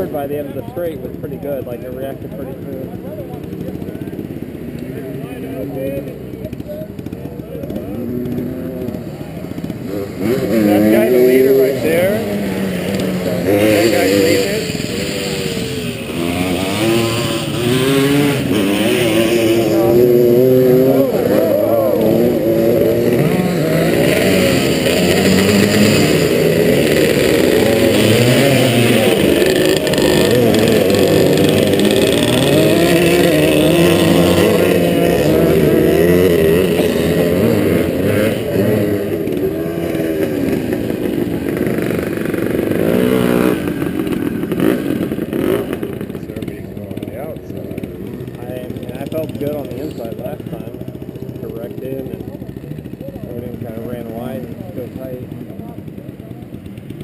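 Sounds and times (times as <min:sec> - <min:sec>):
dirt bike engines idling and revving: 0:00.0 - 0:57.0.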